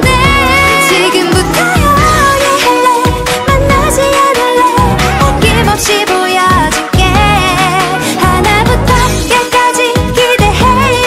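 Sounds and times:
pop dance track with singing: 0.0 - 11.0.

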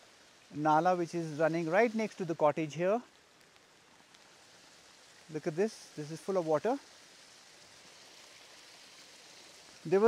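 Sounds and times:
rain: 0.0 - 10.0
water running down drainage channel: 0.0 - 10.0.

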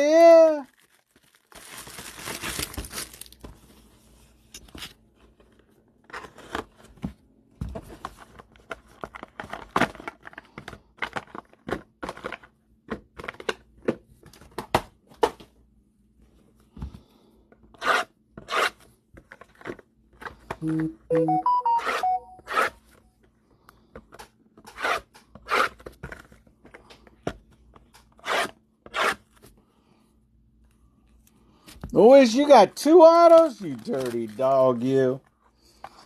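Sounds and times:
shrink-wrap tearing: 0.1 - 3.4, 33.2 - 35.2
loud plastic rips: 0.7 - 3.4.

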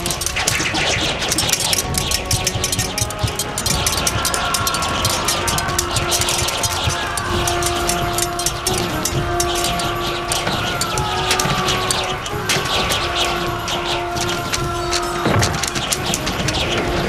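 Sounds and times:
dramatic orchestral score: 0.0 - 17.0.

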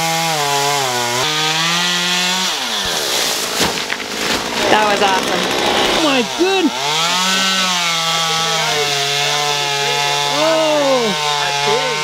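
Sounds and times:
chainsaw cutting: 0.0 - 12.0
palm section thudding down: 2.6 - 6.0.

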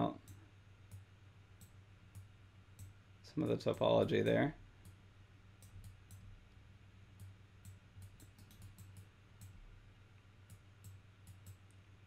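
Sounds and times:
low steady hum: 0.0 - 12.0
computer mouse clicking: 0.2 - 3.0, 5.6 - 6.3, 7.2 - 9.6, 10.4 - 11.8.

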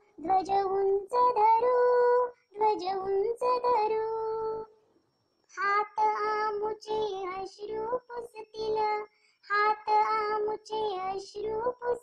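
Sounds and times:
person singing children's poem: 0.0 - 4.6, 5.6 - 12.0.

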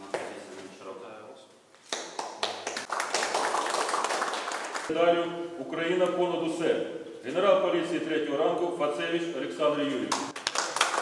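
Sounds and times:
people applauding: 1.9 - 4.9, 10.1 - 11.0.

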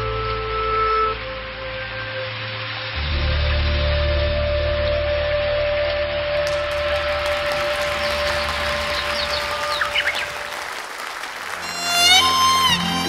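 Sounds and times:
audience applause: 6.4 - 13.0.

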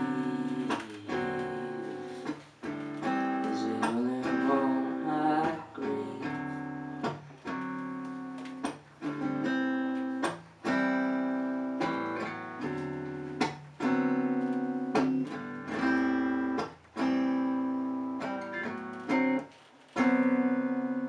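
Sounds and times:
acoustic guitar strumming chords: 0.0 - 21.0.

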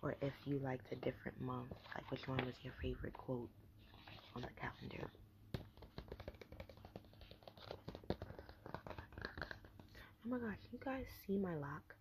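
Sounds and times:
paper calendar ticks and taps: 5.5 - 9.9.

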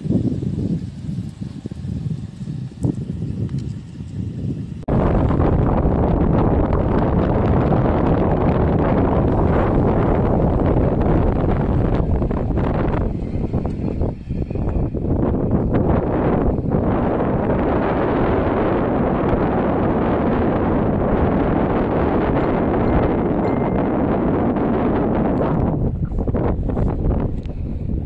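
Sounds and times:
vehicle running noise: 0.0 - 25.8
wind buffeting microphone: 0.0 - 28.0.

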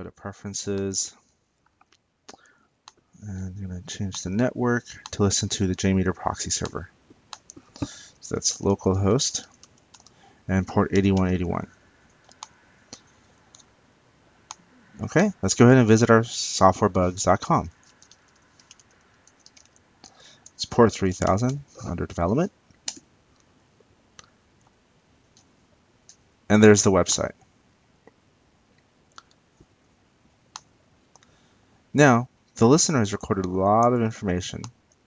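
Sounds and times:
computer mouse clicks: 6.6 - 8.0, 9.5 - 10.2, 12.1 - 13.7, 17.7 - 20.6, 22.8 - 23.5, 30.5 - 31.3.

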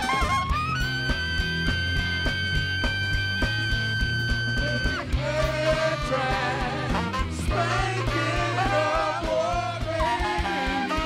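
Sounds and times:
funk band playing: 0.0 - 11.0.

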